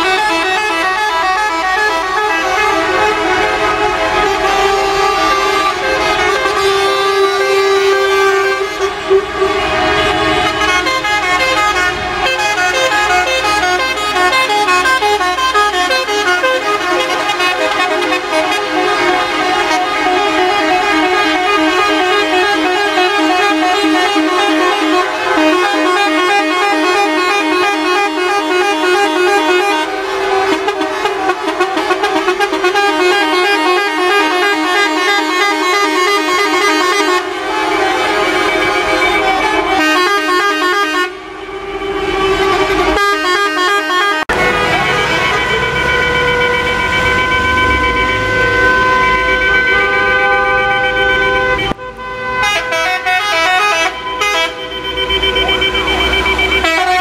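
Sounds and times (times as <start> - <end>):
many vehicle horns honking: 0.0 - 57.0.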